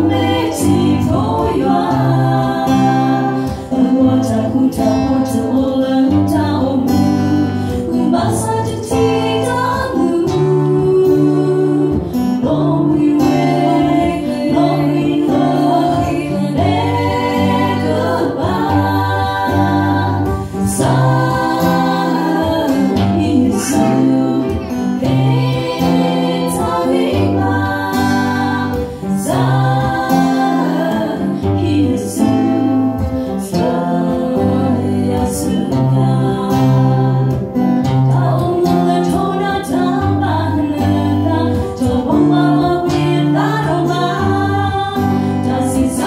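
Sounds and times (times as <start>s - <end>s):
acoustic guitar: 0.0s - 46.0s
women singing a worship song: 0.0s - 46.0s.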